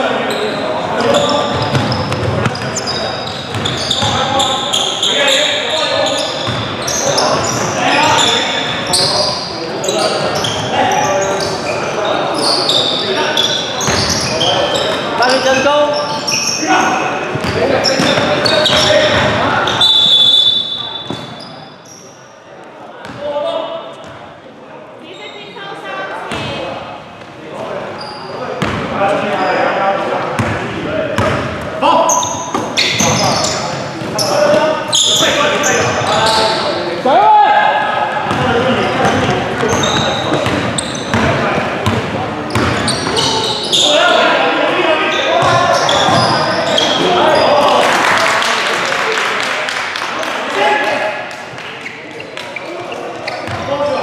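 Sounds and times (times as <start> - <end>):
players' voices echoing in gym: 0.0 - 54.0
ball bouncing on hardwood court: 1.5 - 2.8, 39.0 - 43.2, 45.4 - 46.4.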